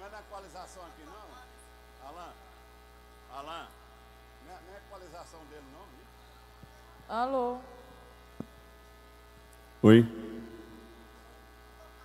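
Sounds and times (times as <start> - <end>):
electrical mains hum: 0.0 - 12.0
faint voices talking: 5.8 - 9.1.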